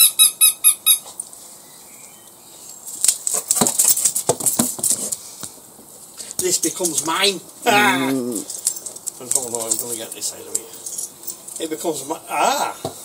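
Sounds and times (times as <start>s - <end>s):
squeaky rubber dog toy: 0.0s - 1.1s.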